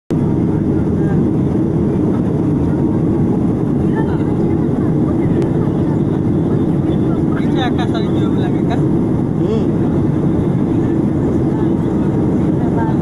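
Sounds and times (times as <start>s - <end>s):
airplane cabin noise: 0.1s - 13.0s
faint voices: 0.2s - 13.0s.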